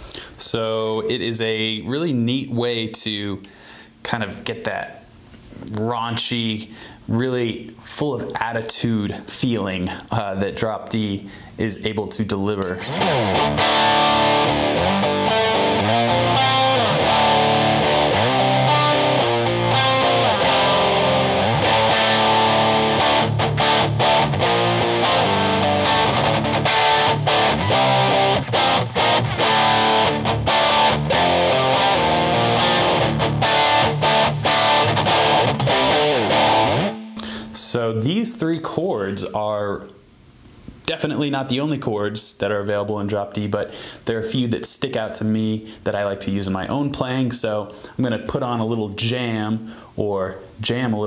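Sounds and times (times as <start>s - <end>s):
distorted electric guitar chords: 12.8s - 37.4s.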